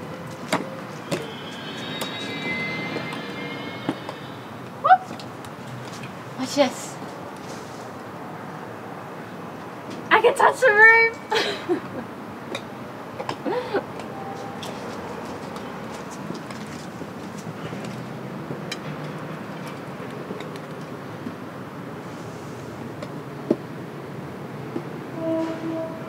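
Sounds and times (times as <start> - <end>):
outdoor background noise: 0.0 - 26.0.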